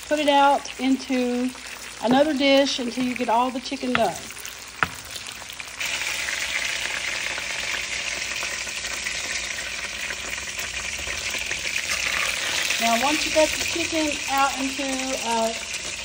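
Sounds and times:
oil sizzling in a wok: 0.0s - 16.0s.

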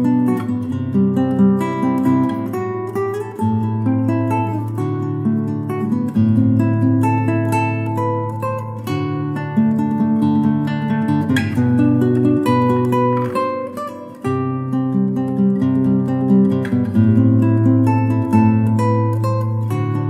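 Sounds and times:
acoustic guitar music: 0.0s - 20.0s.

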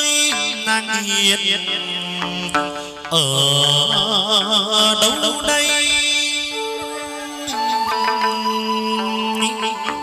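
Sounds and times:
instrumental accompaniment: 0.0s - 10.0s
ritual singing with held notes: 0.0s - 10.0s.

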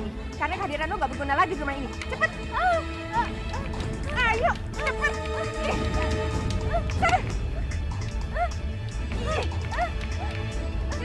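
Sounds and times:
dramatic film music: 0.0s - 11.0s
woman crying out: 2.2s - 5.9s, 6.6s - 7.7s, 8.3s - 11.0s.

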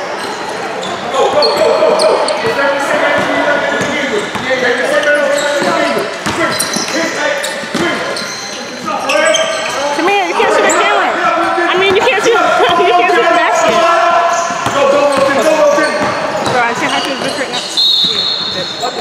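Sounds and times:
sneakers squeaking: 0.0s - 19.0s
basketball bouncing on court: 1.3s - 8.2s, 10.6s - 18.5s
people calling out: 7.8s - 18.8s.

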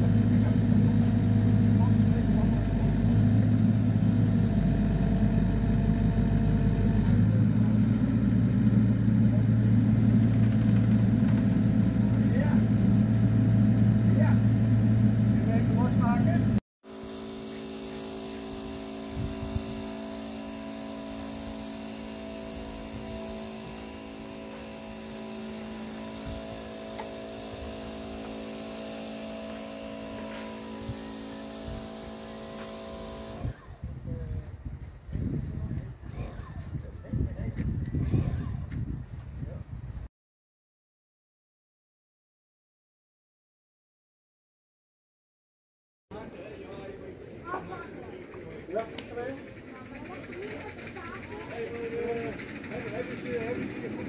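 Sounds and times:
diesel engine running: 0.0s - 33.7s, 47.2s - 54.0s.

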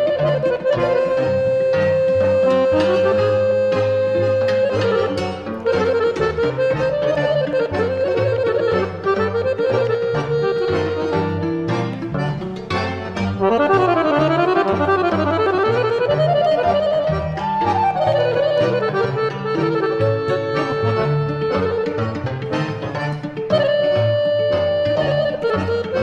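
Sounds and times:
accordion playing: 0.0s - 26.0s
bass and chord accompaniment: 0.0s - 26.0s.

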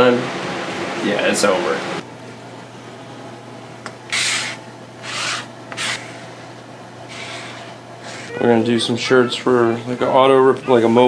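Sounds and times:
card scraping across platen: 7.1s - 8.4s.

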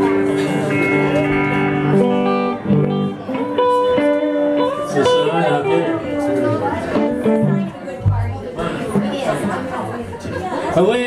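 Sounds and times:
lead guitar bending notes: 0.0s - 9.8s
live rock band playing: 0.0s - 10.1s.

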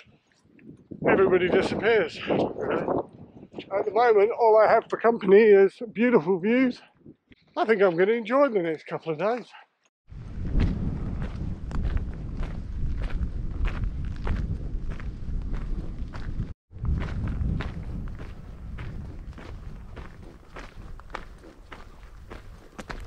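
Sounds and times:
wind rumble on microphone: 0.0s - 4.1s, 10.1s - 23.0s
footsteps crunching on gravel: 10.4s - 23.0s.

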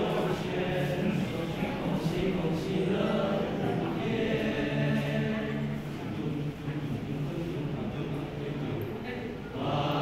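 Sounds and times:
boys' choir singing: 0.0s - 10.0s.

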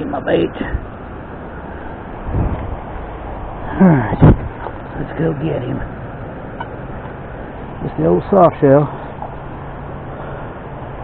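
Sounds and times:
river water rushing: 0.0s - 11.0s.

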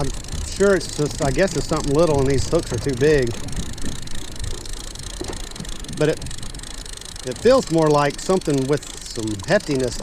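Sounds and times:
wind rumble on microphone: 0.0s - 8.2s.

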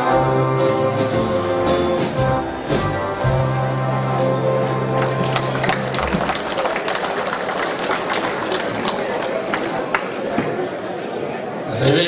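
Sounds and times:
accordion dance band: 0.0s - 9.2s
audience chatter: 0.0s - 12.0s
audience applause: 5.0s - 10.8s.

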